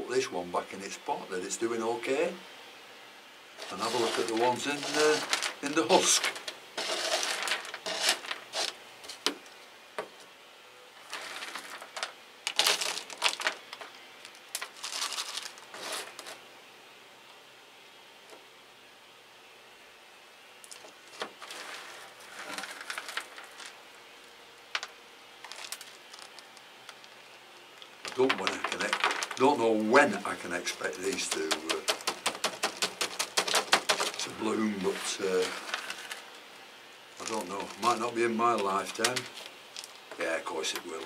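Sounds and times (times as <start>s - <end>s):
plastic pot crinkling: 3.6s - 8.7s, 11.0s - 16.4s, 20.7s - 23.8s, 24.8s - 27.2s, 27.8s - 36.4s, 37.2s - 41.0s.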